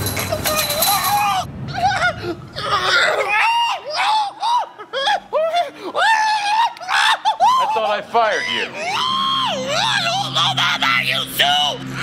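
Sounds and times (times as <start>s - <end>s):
man screaming: 0.9s - 11.9s.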